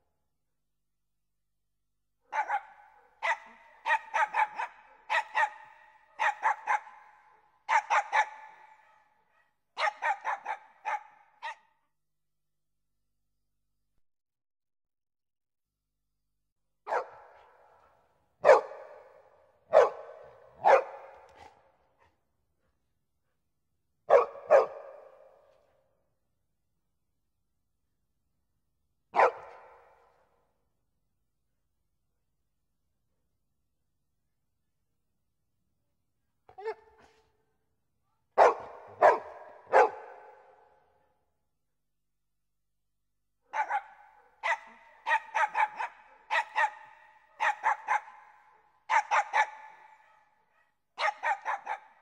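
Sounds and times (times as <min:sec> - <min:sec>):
dog barking: 0:02.2 - 0:11.8, 0:16.8 - 0:23.4, 0:24.0 - 0:25.8, 0:29.1 - 0:30.4, 0:36.5 - 0:37.4, 0:38.3 - 0:41.1, 0:43.5 - 0:52.0.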